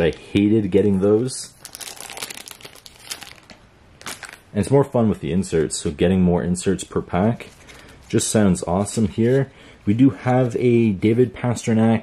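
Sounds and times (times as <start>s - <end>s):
foil wrapper crinkling: 1.6s - 4.4s.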